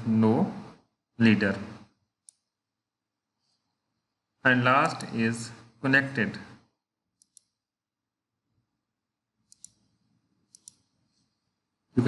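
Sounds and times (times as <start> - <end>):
computer mouse clicks: 2.2 - 2.6, 4.8 - 5.2, 7.1 - 7.6, 9.4 - 11.4.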